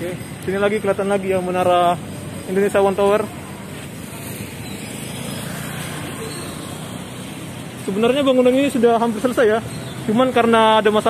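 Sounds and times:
city road traffic: 0:00.0 - 0:11.0.

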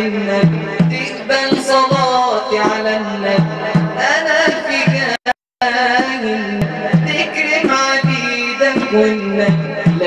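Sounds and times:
man singing a chant: 0:00.0 - 0:10.0.

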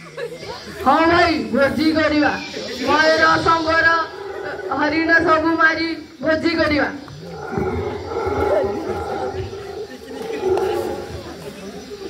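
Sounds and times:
person roaring into a microphone: 0:07.2 - 0:09.8.

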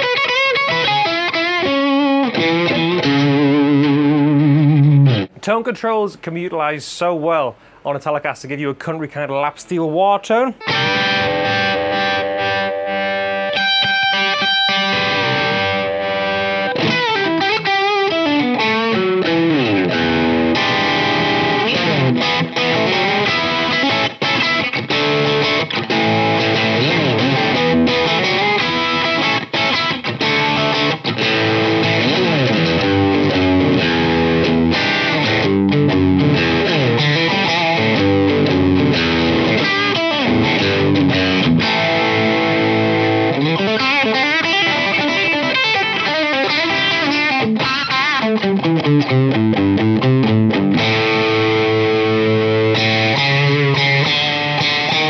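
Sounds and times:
electric guitar with bent notes: 0:00.0 - 0:05.4, 0:10.6 - 0:55.0.

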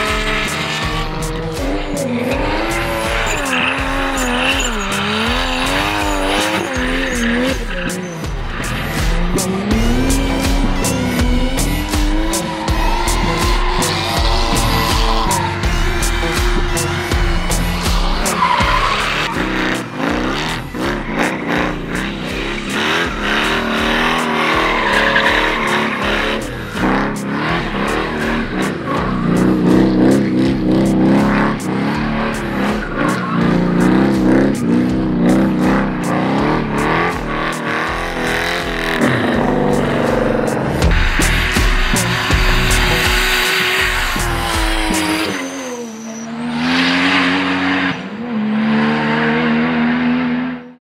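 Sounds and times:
tyre squeal: 0:00.0 - 0:31.7, 0:40.9 - 0:48.0
music: 0:00.0 - 0:45.9
car engines revving: 0:00.0 - 0:50.8.

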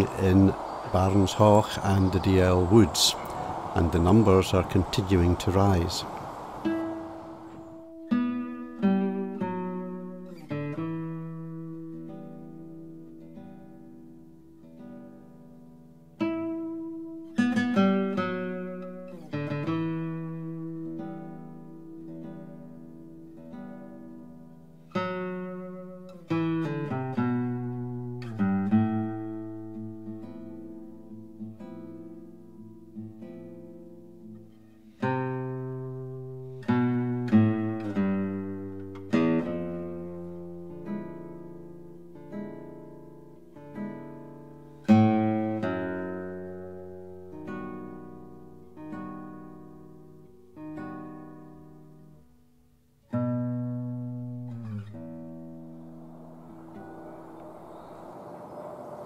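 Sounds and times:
slow plucked acoustic guitar: 0:06.7 - 0:57.6.

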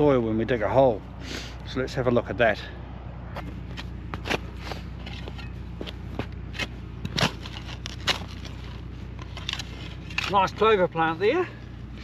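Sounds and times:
spade cutting into turf and soil: 0:03.8 - 0:10.6.

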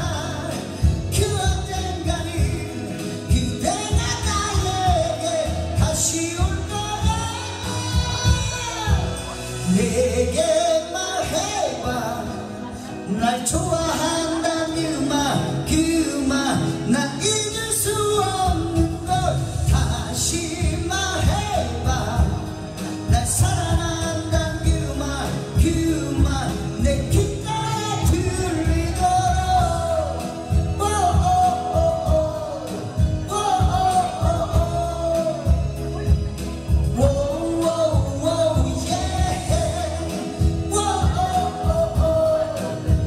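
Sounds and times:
karaoke backing track: 0:00.0 - 0:43.0
man singing into microphone: 0:00.0 - 0:43.0.

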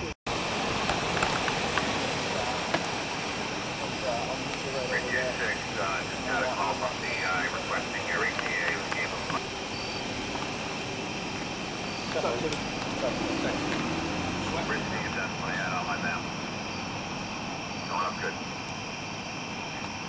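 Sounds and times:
outdoor background rumble and hiss: 0:00.0 - 0:20.0.

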